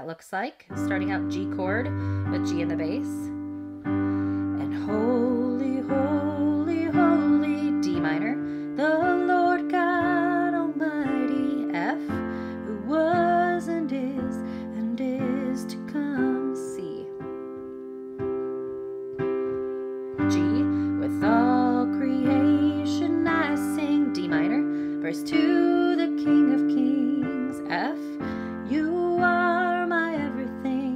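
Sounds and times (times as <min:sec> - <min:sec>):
piano chords: 0:00.7 - 0:30.9
woman singing with vibrato: 0:04.6 - 0:17.2, 0:20.2 - 0:30.9.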